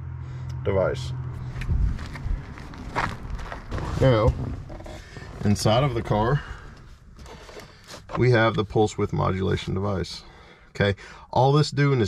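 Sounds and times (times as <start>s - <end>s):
low steady hum: 0.0s - 12.0s
footsteps on gravel: 1.3s - 5.6s.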